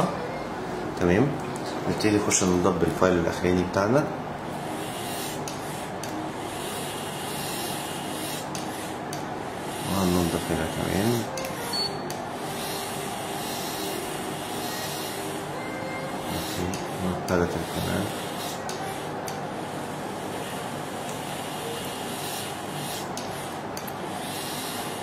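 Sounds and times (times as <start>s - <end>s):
dental motor humming: 4.5s - 25.0s.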